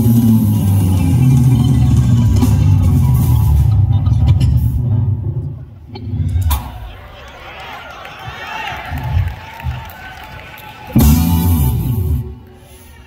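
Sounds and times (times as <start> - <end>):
jazz band playing: 0.0 - 4.8, 10.9 - 12.6
electric bass guitar: 0.0 - 6.6, 10.9 - 12.5
drum kit: 0.0 - 6.8, 10.9 - 12.5.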